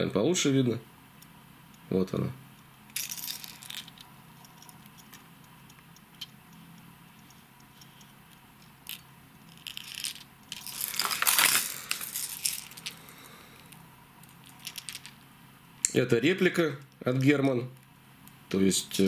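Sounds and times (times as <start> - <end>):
fishing lures clinking and rattling: 3.0 - 5.2, 8.9 - 13.0, 14.4 - 15.2.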